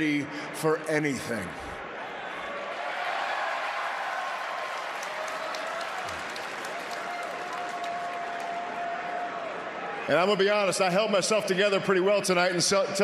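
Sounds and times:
crowd applauding: 0:02.8 - 0:09.6.

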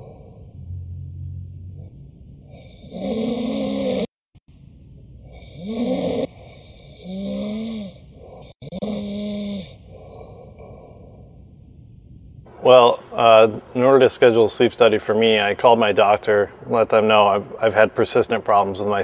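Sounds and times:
quiet breathing: 0:00.0 - 0:04.1, 0:04.8 - 0:12.5
man snoring loudly: 0:02.4 - 0:04.2, 0:05.3 - 0:10.6.

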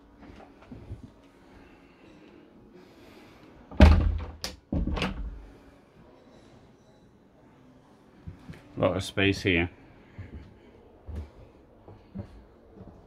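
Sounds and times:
door thudding: 0:03.7 - 0:05.4.

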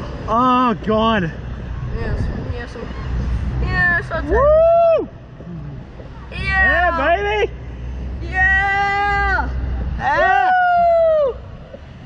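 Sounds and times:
wind rumble on microphone: 0:00.0 - 0:12.0
riders whooping: 0:04.2 - 0:05.3, 0:08.4 - 0:11.9.

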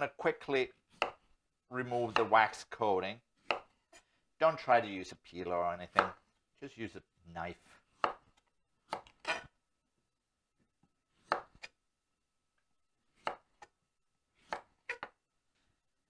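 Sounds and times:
knife chopping on wooden board: 0:00.9 - 0:01.3, 0:02.1 - 0:02.4, 0:03.4 - 0:03.8, 0:05.9 - 0:06.2, 0:07.6 - 0:09.5, 0:11.2 - 0:11.8, 0:13.1 - 0:13.7, 0:14.4 - 0:15.1.

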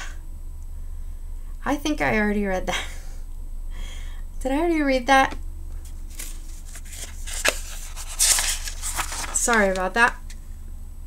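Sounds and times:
book pages rustling: 0:05.8 - 0:10.3.

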